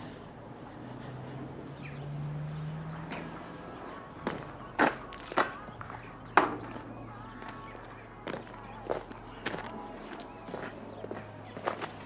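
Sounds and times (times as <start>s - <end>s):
footsteps crunching on gravel: 4.2s - 12.0s.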